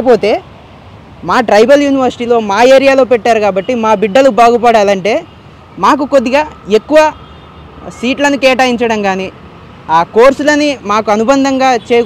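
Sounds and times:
man talking: 0:07.8 - 0:09.3, 0:09.9 - 0:12.0.

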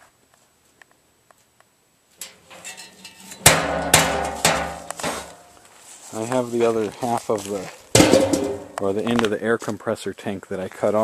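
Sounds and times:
metal taps on steel drum: 0:02.2 - 0:05.5, 0:08.0 - 0:08.8
ringing metal clangs: 0:02.2 - 0:05.6, 0:08.0 - 0:08.8.

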